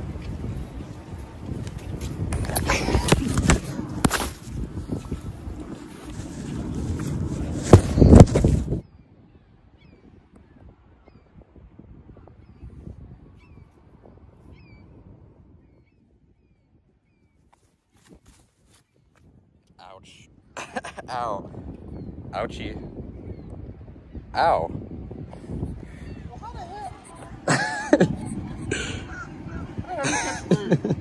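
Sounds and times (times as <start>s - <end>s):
wind buffeting microphone: 0.0s - 31.0s
faint gull calls: 29.0s - 30.0s.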